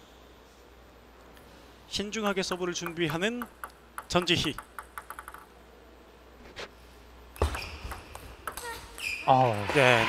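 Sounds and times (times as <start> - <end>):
table tennis ball hits: 2.4 - 5.5, 7.4 - 9.0.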